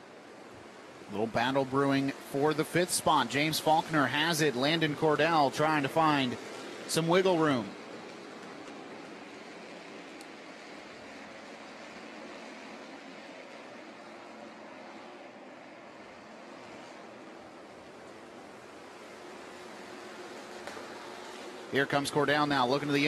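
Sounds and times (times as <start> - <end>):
distant race cars running: 0.0 - 23.0.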